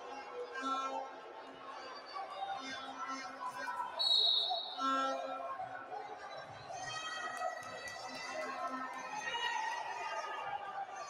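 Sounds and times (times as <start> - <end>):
referee's whistle blast: 4.0 - 5.0.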